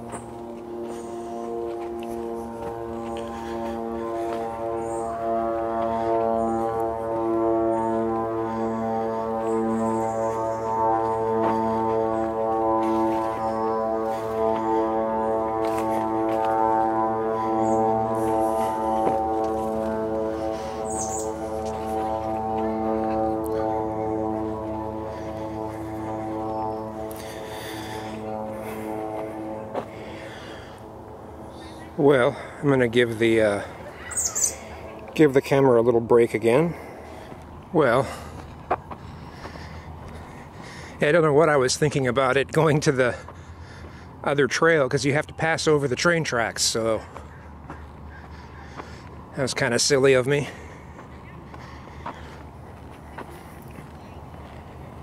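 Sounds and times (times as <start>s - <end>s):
footsteps on dirt trail: 0.0s - 44.8s, 46.0s - 55.0s
distant engine droning hum: 0.0s - 55.0s.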